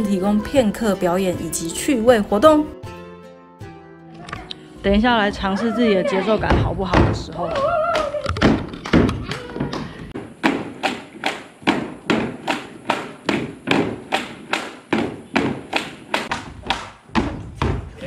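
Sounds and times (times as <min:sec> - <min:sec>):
bamboo poles knocking: 0:06.4 - 0:18.0.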